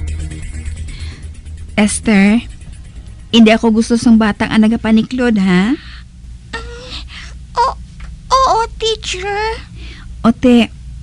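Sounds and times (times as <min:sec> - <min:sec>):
person whimpering and moaning: 0:06.5 - 0:07.7.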